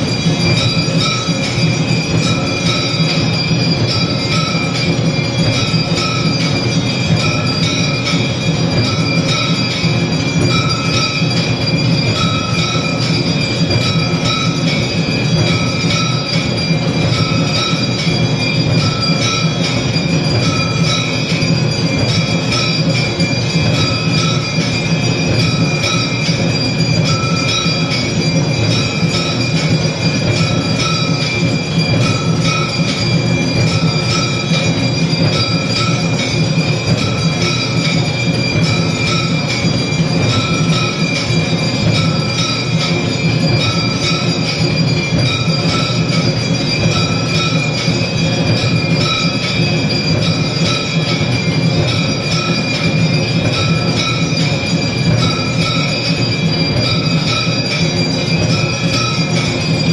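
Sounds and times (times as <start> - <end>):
drums: 0.0 - 59.9
temple bells clanging: 0.0 - 59.9.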